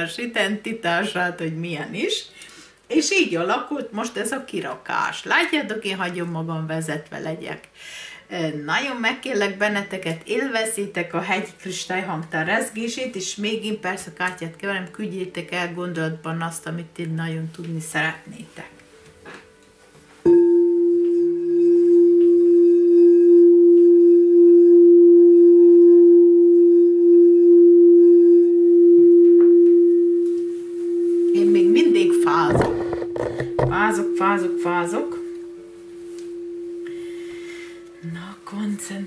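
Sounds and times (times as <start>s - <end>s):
singing bowl ringing: 20.2s - 38.6s.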